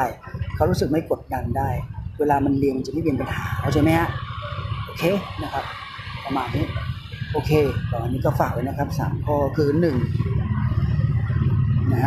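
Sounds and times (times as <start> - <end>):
steady low rumble: 0.2 - 12.0.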